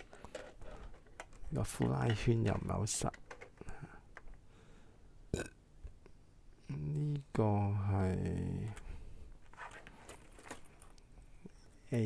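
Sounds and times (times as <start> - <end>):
plastic parts clicking: 0.0 - 4.4
throaty vocal sound: 5.3 - 5.6.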